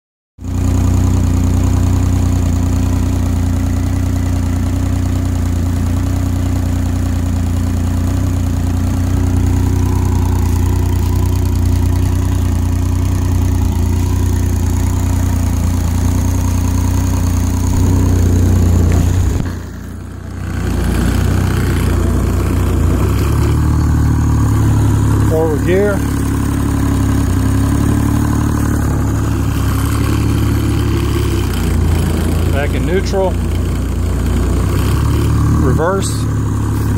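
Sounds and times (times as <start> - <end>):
outboard motor idling: 0.4 - 36.9.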